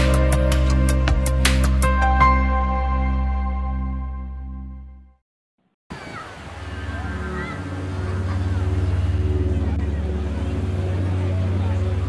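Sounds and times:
faint voices: 5.9 - 12.0.

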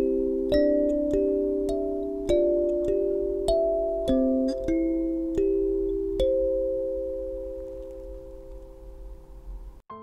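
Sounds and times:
kalimba tine plucked: 0.0 - 9.2.

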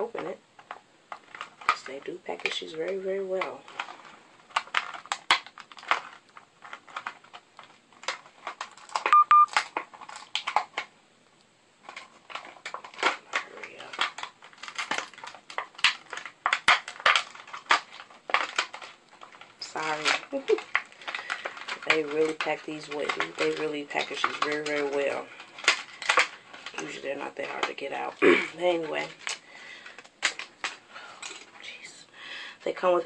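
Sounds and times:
plastic packaging clicking and crackling: 0.0 - 31.8.

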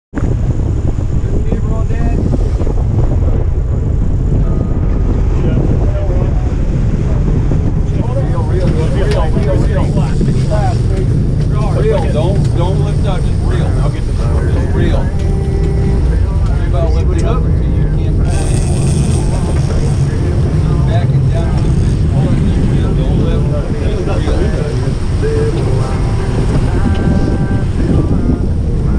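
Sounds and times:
boat engine and water rumble: 0.1 - 28.9
wind buffeting microphone: 0.1 - 28.9.

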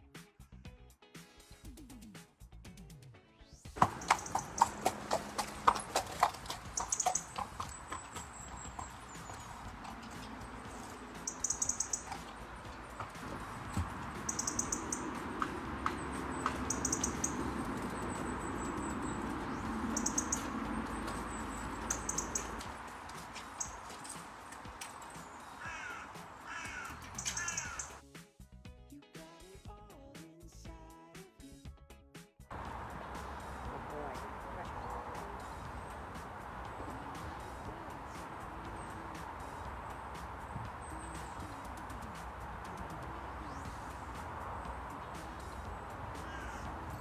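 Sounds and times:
crow cawing: 3.8 - 9.6, 10.8 - 13.1, 13.8 - 18.2, 18.8 - 23.9, 25.1 - 28.0, 46.0 - 47.0
horse hooves knocking on wood: 3.8 - 28.0.

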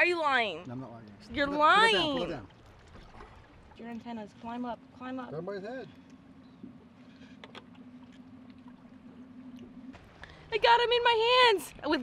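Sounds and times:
low boat hum: 0.0 - 12.0.

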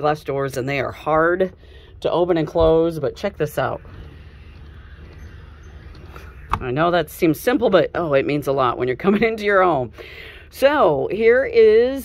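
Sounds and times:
low outdoor rumble: 0.0 - 12.0
sliding glass door rolling: 2.1 - 9.8.

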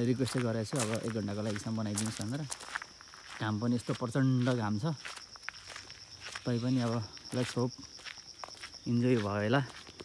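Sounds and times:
man talking: 0.0 - 2.6, 3.4 - 5.0, 6.4 - 7.8, 8.8 - 9.8
footsteps on gravel: 0.0 - 10.0
high-pitched insect drone: 0.0 - 10.0.

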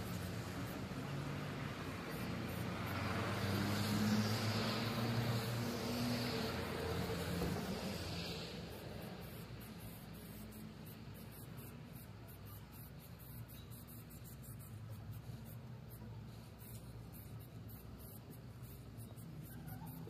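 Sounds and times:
spray paint can hissing: 6.4 - 20.0.

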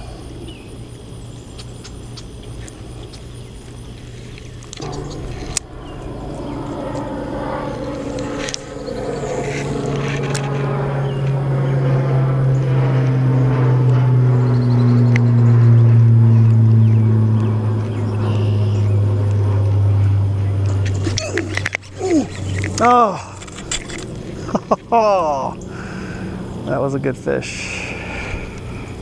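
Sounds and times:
low engine drone: 0.0 - 29.0.

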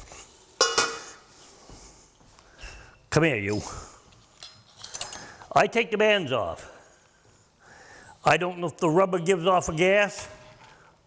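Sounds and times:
utensil clanging on metal pot: 0.6 - 1.2.

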